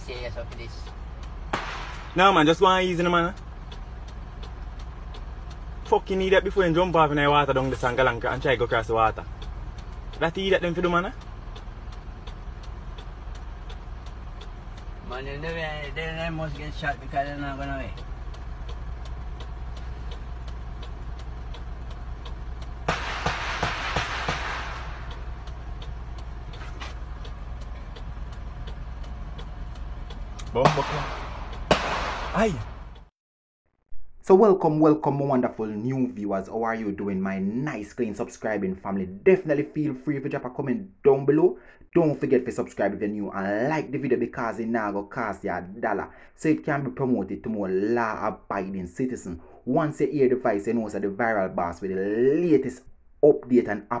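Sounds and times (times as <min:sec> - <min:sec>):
vehicle engine rumbling: 0:00.0 - 0:33.1, 0:34.0 - 0:54.0
faint ticks: 0:00.4 - 0:01.4, 0:03.0 - 0:07.3, 0:08.2 - 0:22.9, 0:24.9 - 0:30.5.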